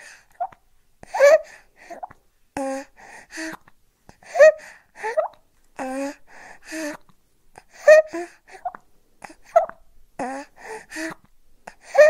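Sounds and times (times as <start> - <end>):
baby gasping and whimpering: 1.0 - 7.0, 7.6 - 12.0.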